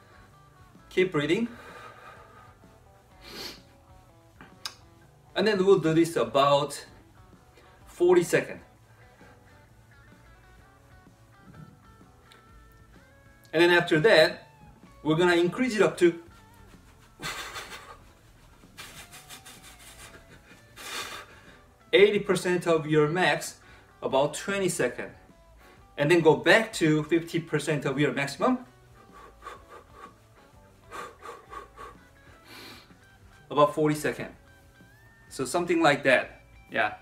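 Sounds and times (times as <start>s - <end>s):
faint guitar music: 0.0s - 37.0s
man breathing hard: 1.4s - 4.6s, 8.8s - 10.1s, 16.2s - 21.8s, 25.4s - 26.0s, 28.7s - 33.2s.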